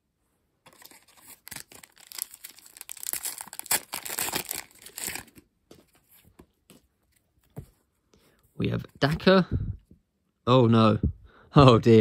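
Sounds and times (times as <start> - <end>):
plastic wrapper tearing and crumpling: 0.7 - 5.4.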